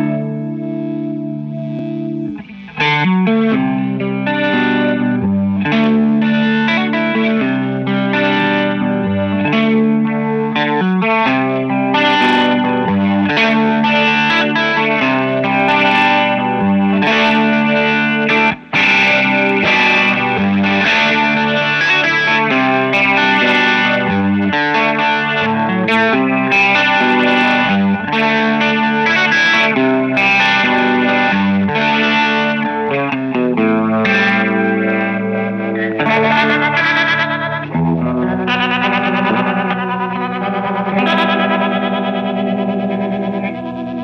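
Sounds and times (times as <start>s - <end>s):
electric guitar with rotary effect: 0.0s - 44.0s.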